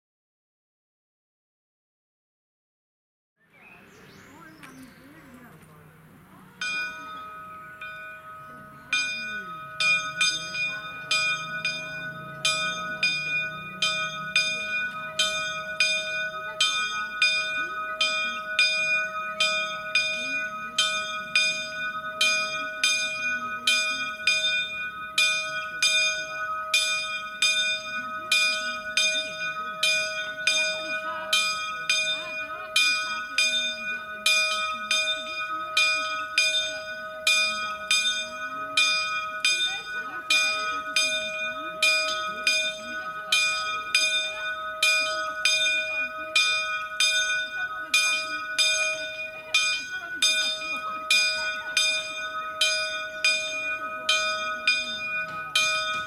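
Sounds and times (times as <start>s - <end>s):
ringing hum of bell: 4.3s - 56.0s
church bell ringing: 4.4s - 56.0s.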